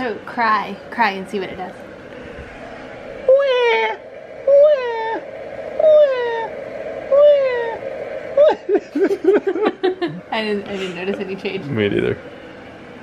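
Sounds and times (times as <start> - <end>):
adult imitating baby crying: 3.3 - 5.2, 5.8 - 6.5, 7.1 - 7.8, 8.4 - 8.8
people laughing: 8.4 - 11.6.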